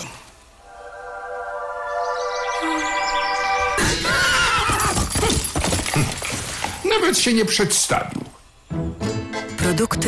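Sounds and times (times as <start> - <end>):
held musical chord: 0.6 - 3.8.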